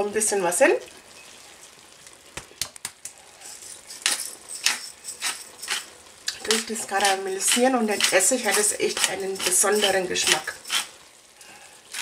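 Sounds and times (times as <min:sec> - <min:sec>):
pepper mill grinding: 0:03.4 - 0:10.9.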